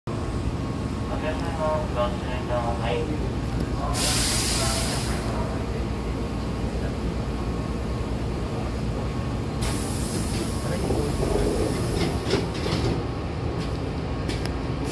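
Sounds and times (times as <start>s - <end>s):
stopped train rumbling: 0.1s - 14.9s
air hissing: 3.9s - 5.4s, 9.6s - 12.3s
train doors knocking shut: 10.1s - 14.4s.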